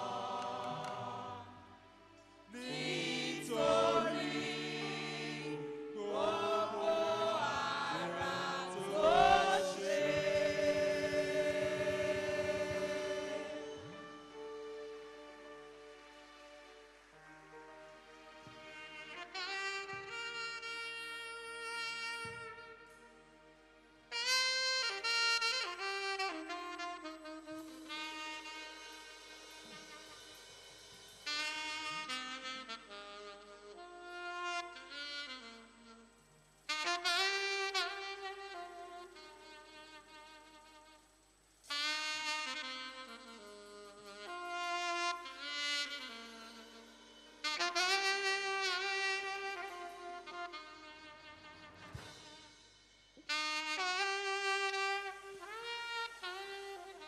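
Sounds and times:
saxophones playing slow melody: 0.0 - 57.0.

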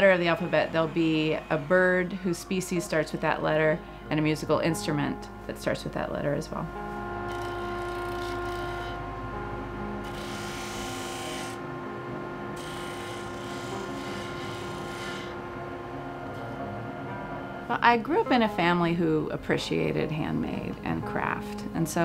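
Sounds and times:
disc sander motor hum: 0.0 - 2.6, 6.8 - 17.7.

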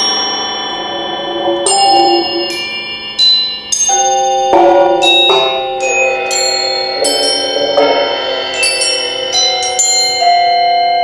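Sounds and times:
metallic mallet percussion notes: 0.0 - 11.0.

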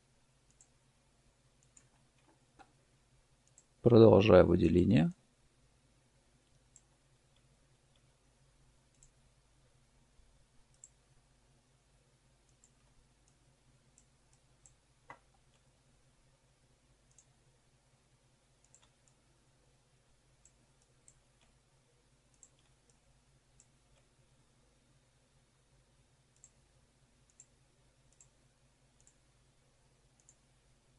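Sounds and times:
low room tone hum: 0.0 - 30.9
computer mouse click: 0.5 - 0.7, 1.6 - 2.8, 3.4 - 3.7, 6.4 - 8.1, 8.9 - 9.2, 10.7 - 11.0, 12.4 - 15.7, 17.1 - 17.3, 18.6 - 19.2, 20.4 - 21.6, 22.3 - 23.0, 26.3 - 26.6, 27.3 - 28.4, 29.0 - 29.2, 30.2 - 30.4
man speaking: 3.9 - 5.2.

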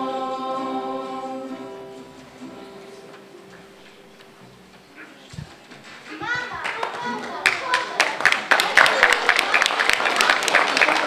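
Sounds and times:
acoustic guitar chord ringing: 0.0 - 3.5
children's choir singing: 0.0 - 4.2.

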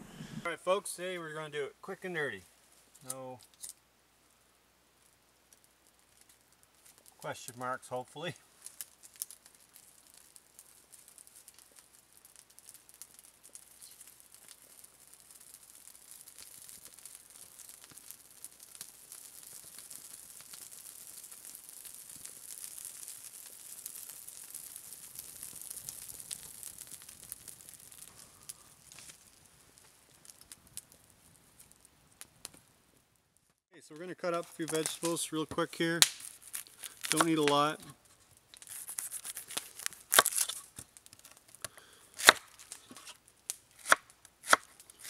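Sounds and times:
fire hissing: 0.0 - 33.0, 34.2 - 45.0
campfire crackles: 0.0 - 45.0.

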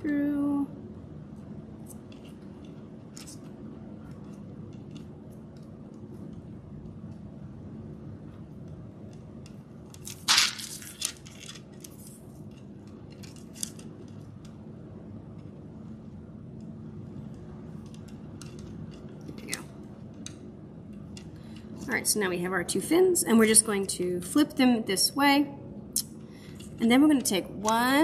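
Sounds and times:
steady low hum: 0.0 - 28.0
beads clicking and rustling: 10.0 - 14.1.

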